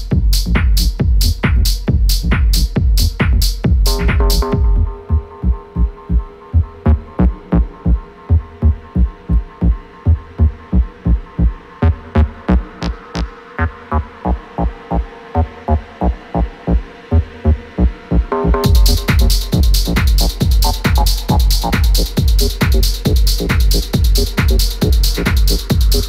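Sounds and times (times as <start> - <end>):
low kick drum pulse: 0.0 - 26.0
techno music: 0.0 - 26.0.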